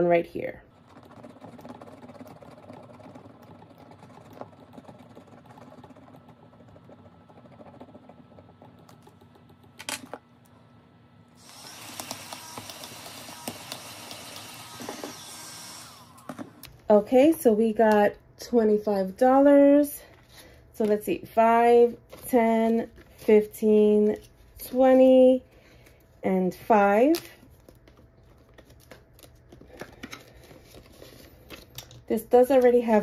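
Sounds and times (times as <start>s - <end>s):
scratching card coating: 0.7s - 9.9s, 11.4s - 16.2s.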